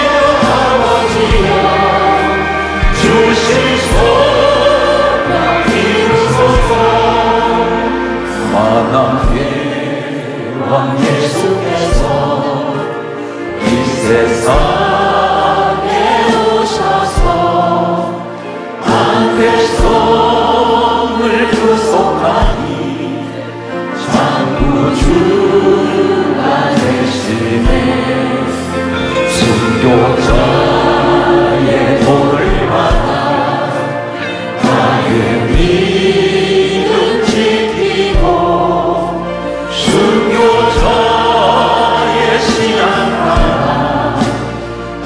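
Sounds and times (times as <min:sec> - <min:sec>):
drum hits: 0:00.0 - 0:07.7, 0:08.6 - 0:09.8, 0:29.4 - 0:33.5, 0:34.6 - 0:38.8, 0:39.8 - 0:44.7
bass guitar: 0:00.0 - 0:45.0
keyboard: 0:00.0 - 0:45.0
men and women singing worship song: 0:00.0 - 0:45.0.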